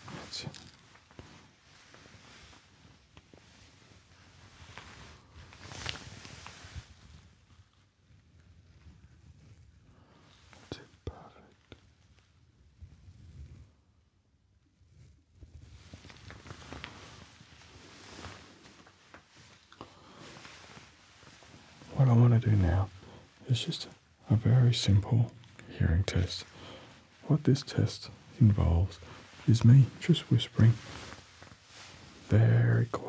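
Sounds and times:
person speaking quietly: 0.0s - 0.7s, 10.6s - 11.6s, 21.9s - 31.2s, 32.2s - 33.0s
shirt sleeve rustling: 0.0s - 7.3s, 15.6s - 22.0s, 26.2s - 32.9s.

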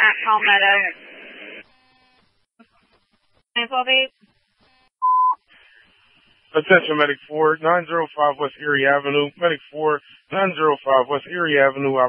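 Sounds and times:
radio static hiss: 0.0s - 12.0s
faint buzz: 1.6s - 12.0s.

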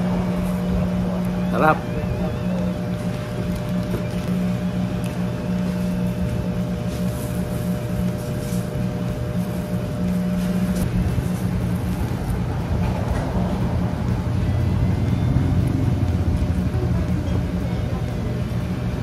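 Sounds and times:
low engine rumble: 0.0s - 19.0s.

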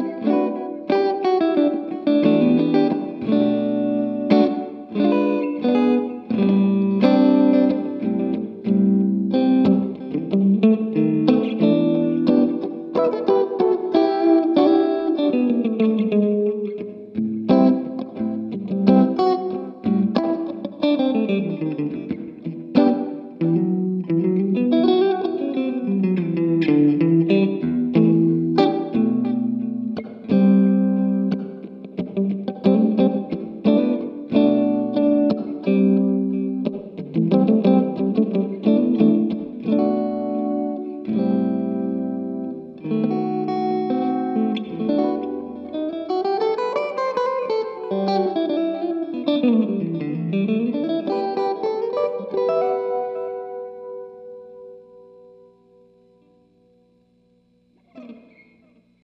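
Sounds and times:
electric guitar jazz chords: 0.0s - 59.0s.

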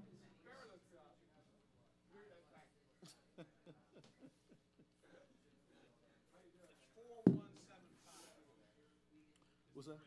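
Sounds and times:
sharp thump: 7.3s - 7.5s.

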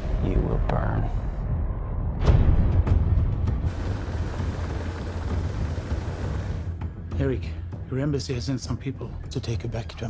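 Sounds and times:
helicopter engine and rotor: 3.7s - 6.8s.

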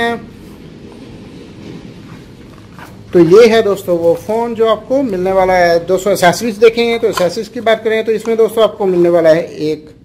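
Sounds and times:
man speaking: 0.0s - 0.3s, 3.1s - 10.0s
low hiss and rumble: 0.0s - 10.0s.

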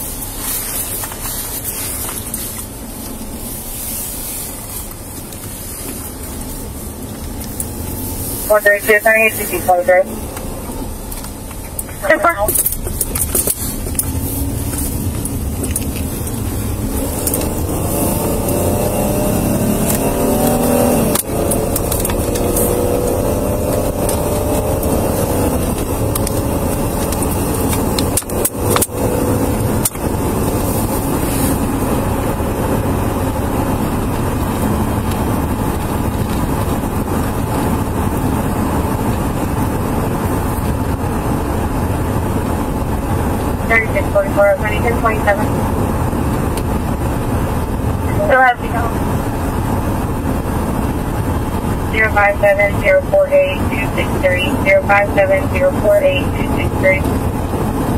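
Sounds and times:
car engine accelerating: 0.0s - 57.9s.

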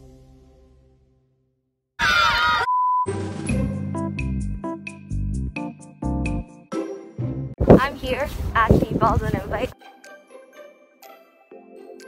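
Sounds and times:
music: 0.0s - 1.5s, 3.0s - 12.0s.

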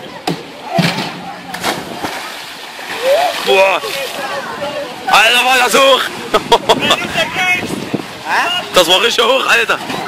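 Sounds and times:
splash into swimming pool: 1.5s - 4.2s
people shouting: 2.9s - 3.7s.

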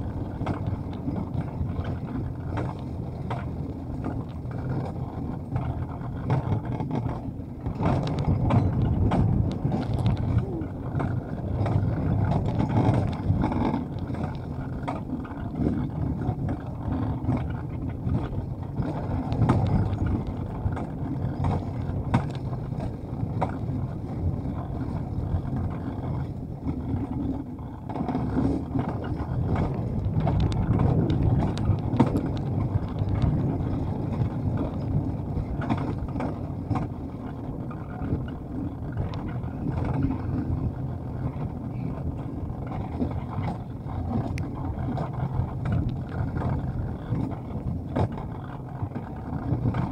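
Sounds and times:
sled wheels rumbling on metal rail: 0.0s - 49.9s.

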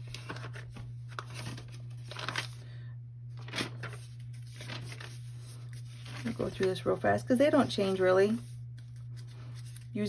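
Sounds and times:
paper pages turning: 0.0s - 2.7s, 3.3s - 10.0s
steady low hum: 0.0s - 10.0s.

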